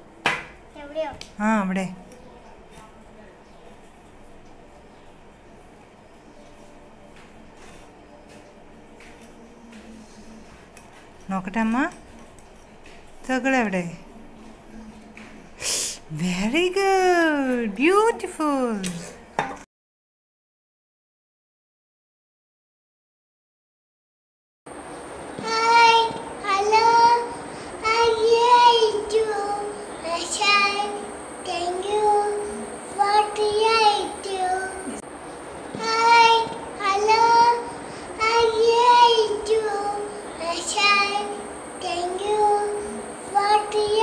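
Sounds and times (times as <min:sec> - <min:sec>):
faint low hum: 0:24.8 - 0:44.0
small child singing: 0:25.4 - 0:35.0, 0:35.7 - 0:44.0.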